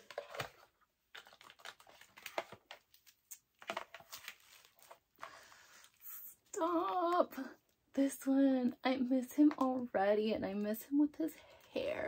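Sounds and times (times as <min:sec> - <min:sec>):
packaging clicking and rustling: 0:00.0 - 0:05.4.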